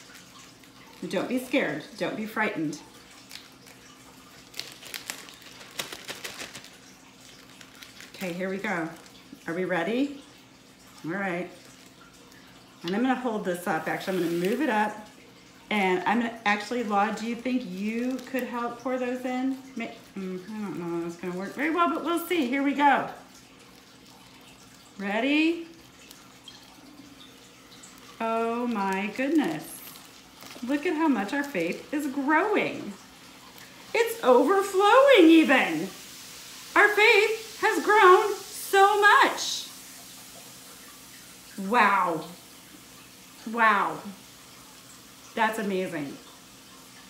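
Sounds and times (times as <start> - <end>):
plastic bag crinkling: 0.0 - 1.6, 2.8 - 9.5, 11.5 - 12.6, 16.8 - 20.2, 23.4 - 24.9, 25.8 - 35.1
faint steady hiss: 0.0 - 47.0.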